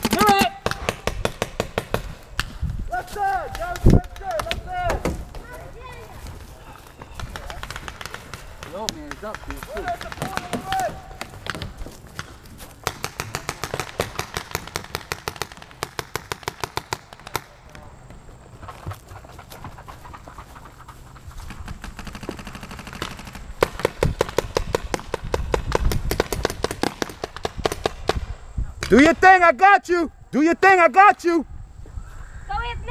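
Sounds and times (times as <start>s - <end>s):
paintball markers firing: 0.0s - 2.6s, 3.5s - 5.5s, 7.0s - 18.2s, 21.4s - 29.0s.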